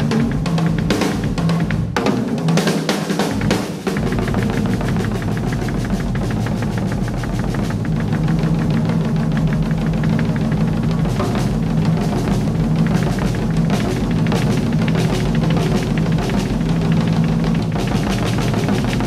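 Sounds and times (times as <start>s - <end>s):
drum kit played fast: 0.0s - 19.0s
fast drum roll: 0.0s - 19.0s.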